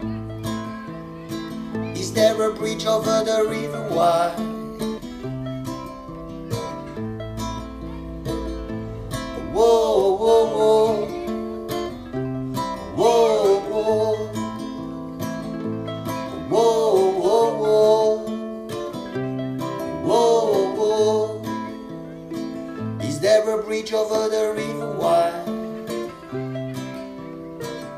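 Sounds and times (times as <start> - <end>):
acoustic guitar strumming: 0.0 - 27.9.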